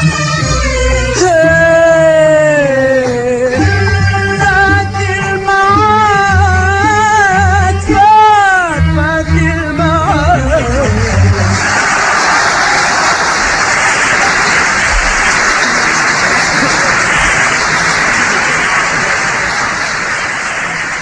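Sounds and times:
audience applauding and cheering: 10.8 - 21.0.

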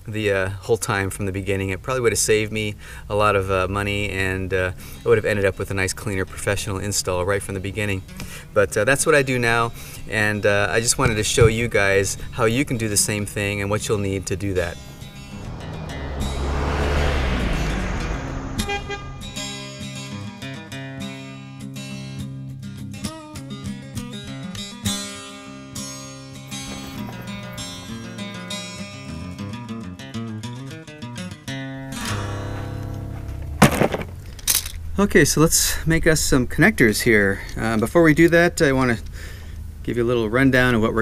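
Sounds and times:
vehicle driving past: 13.8 - 20.0, 26.5 - 29.5
music: 19.0 - 33.6
box clattering on rock: 33.6 - 34.7.

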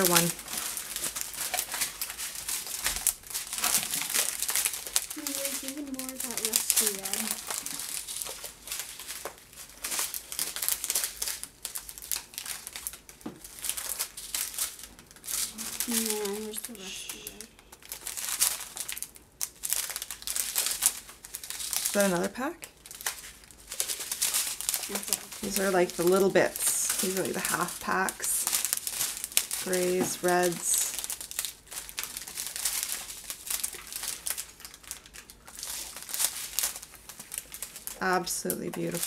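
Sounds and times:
plastic packets crinkling: 0.0 - 39.0.

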